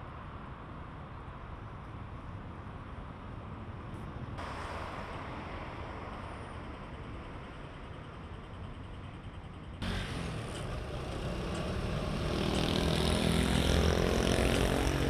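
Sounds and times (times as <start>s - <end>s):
street traffic: 0.0s - 15.0s
vehicle engine: 4.4s - 15.0s.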